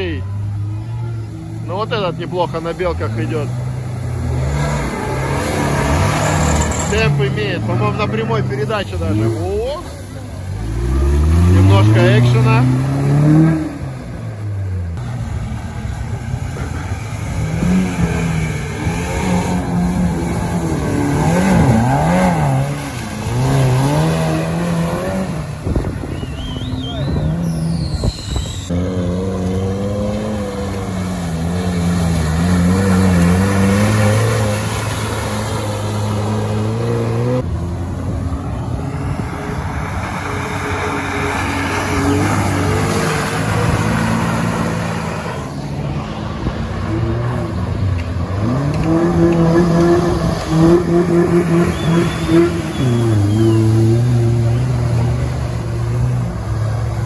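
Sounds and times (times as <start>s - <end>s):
off-road vehicle engines revving: 0.0s - 57.0s.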